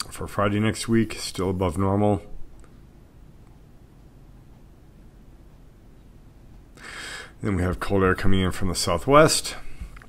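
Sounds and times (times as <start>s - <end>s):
person speaking: 0.0s - 2.6s, 6.9s - 10.0s
person inhaling: 6.8s - 7.4s.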